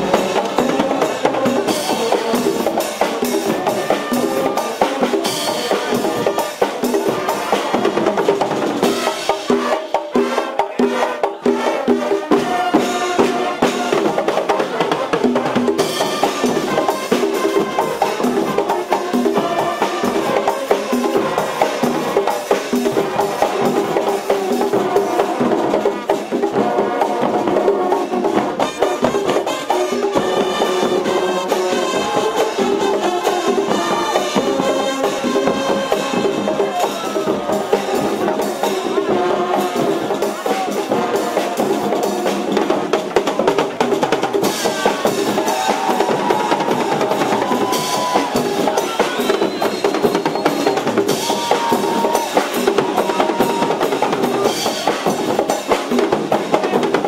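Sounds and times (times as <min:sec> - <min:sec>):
marching drums: 0:00.0 - 0:57.0
trumpets playing melody: 0:08.8 - 0:42.8.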